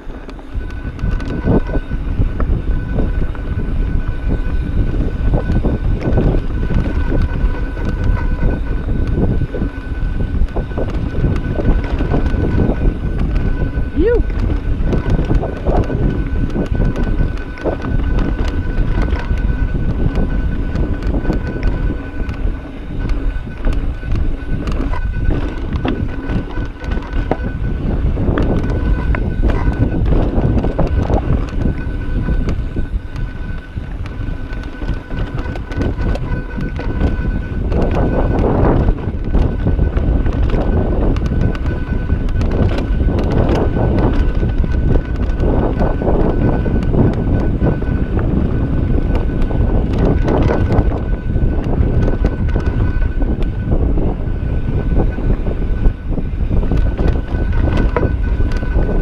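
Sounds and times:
bike rattling over rocks: 0.0s - 59.0s
bike tyres rumbling on dirt: 0.0s - 59.0s
thin steady whine: 0.0s - 59.0s
wind buffeting microphone: 0.0s - 59.0s.

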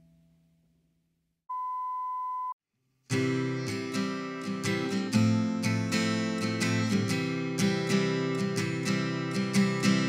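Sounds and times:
steady electronic beep: 1.5s - 2.6s.

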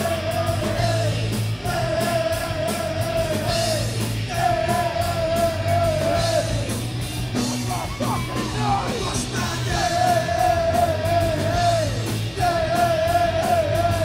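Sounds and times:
live rock band playing: 0.0s - 14.0s.

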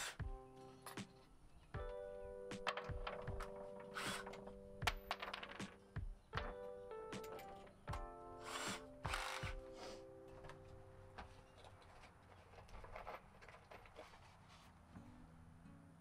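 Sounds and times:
cordless drill bursts: 0.0s - 0.2s, 4.0s - 4.4s, 8.4s - 9.8s
background music sustained chords: 0.0s - 11.7s.

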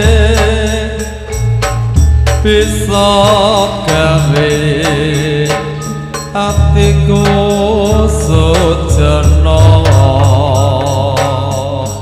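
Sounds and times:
percussion strokes: 0.0s - 12.0s
person singing with vibrato: 0.0s - 12.0s.

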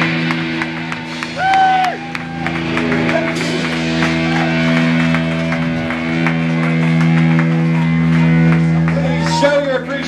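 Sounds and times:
drums and cymbals hitting: 0.0s - 10.0s
punk rock band holding a chord: 0.0s - 10.0s.

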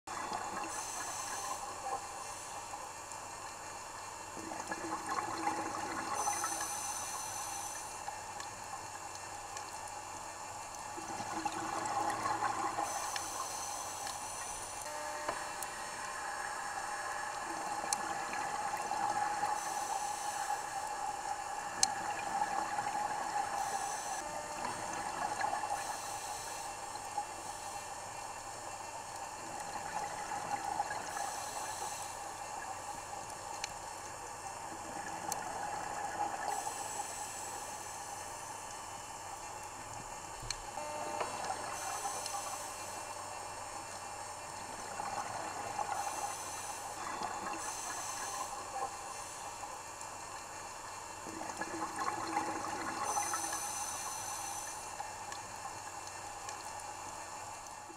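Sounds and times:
underwater watery hiss: 0.1s - 9.2s, 10.0s - 39.6s, 41.0s - 57.8s.

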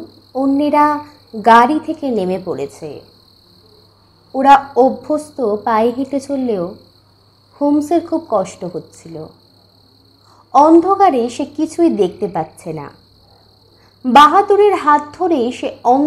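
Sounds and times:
crickets chirring: 0.0s - 16.0s.

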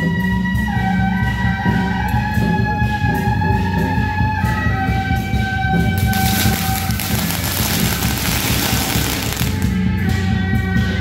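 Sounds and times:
procession music: 5.9s - 9.8s
firecrackers crackling: 6.0s - 9.8s.

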